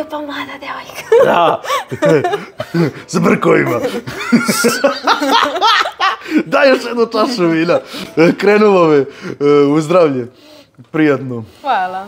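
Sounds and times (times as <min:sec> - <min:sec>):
man and woman laughing: 0:01.0 - 0:08.6.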